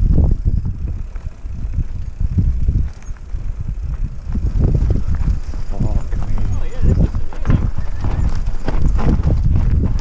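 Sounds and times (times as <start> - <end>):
bike rattling: 0.0 - 10.0
wind rumbling on microphone: 0.0 - 10.0
tyres crunching over stones: 2.7 - 10.0.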